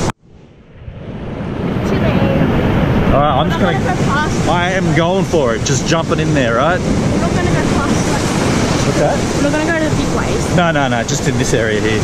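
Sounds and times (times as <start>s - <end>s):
surf rushing: 0.0s - 12.0s
wind noise: 0.0s - 12.0s.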